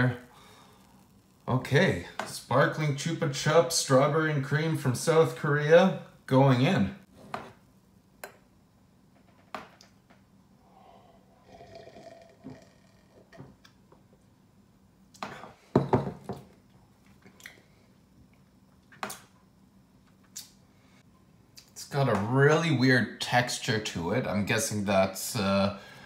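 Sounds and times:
person sipping and swallowing: 0:10.8 - 0:13.7.

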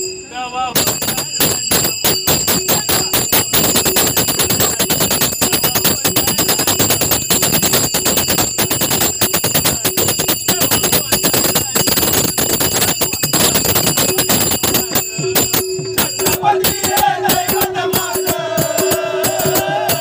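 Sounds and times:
hand cymbals ringing: 0:00.0 - 0:20.0
hand drum strokes: 0:00.8 - 0:20.0.

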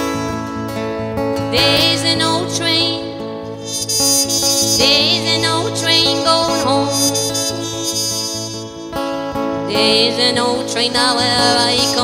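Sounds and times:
acoustic guitar strumming: 0:00.0 - 0:12.0
woman singing: 0:01.5 - 0:03.3, 0:04.6 - 0:08.6, 0:09.6 - 0:12.0.

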